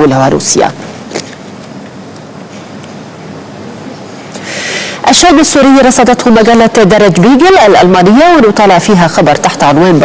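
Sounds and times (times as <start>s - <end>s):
steady broadcast hiss: 0.0s - 10.0s.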